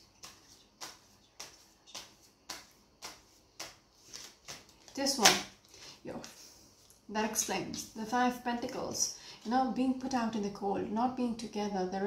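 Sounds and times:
cards being shuffled: 0.1 - 5.5.

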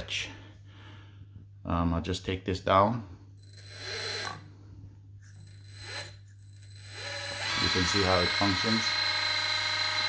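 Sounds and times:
hydraulic pump whine: 5.2 - 10.0.

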